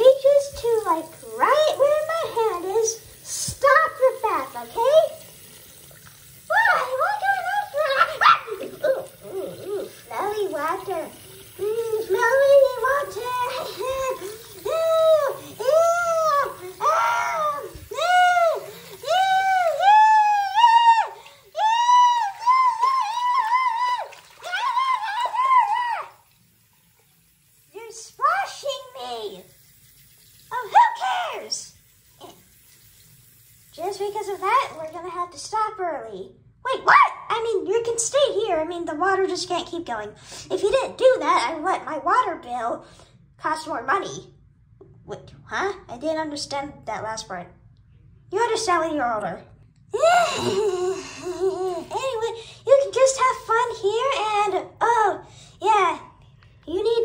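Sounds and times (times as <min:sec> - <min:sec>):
faucet running into sink: 0:00.0 - 0:35.5, 0:50.0 - 0:54.5.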